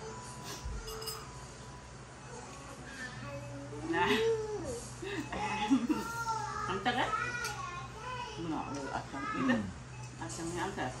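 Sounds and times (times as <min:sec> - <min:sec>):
toddler's voice: 0:05.9 - 0:09.6.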